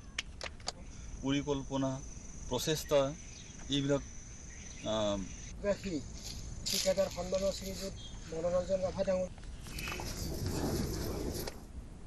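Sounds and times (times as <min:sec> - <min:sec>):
high-pitched insect drone: 0:00.8 - 0:08.0.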